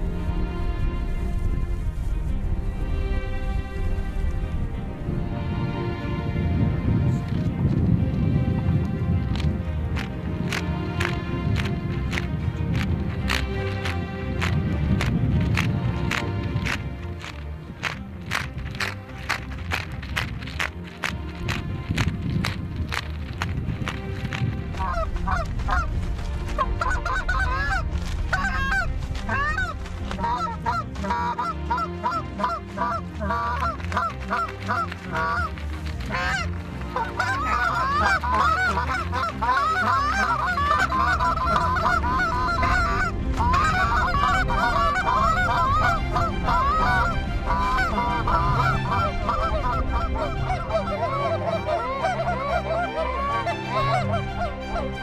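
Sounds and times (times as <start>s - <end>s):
geese honking: 8.7s - 55.0s.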